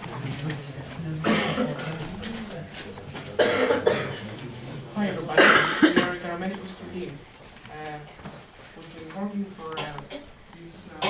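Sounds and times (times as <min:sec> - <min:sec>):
person coughing: 0:01.2 - 0:01.9, 0:03.4 - 0:04.3, 0:05.4 - 0:06.2.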